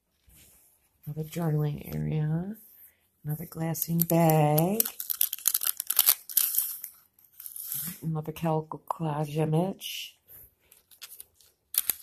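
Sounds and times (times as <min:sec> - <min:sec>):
paper pages rustling: 0:03.4 - 0:08.0, 0:10.6 - 0:12.0.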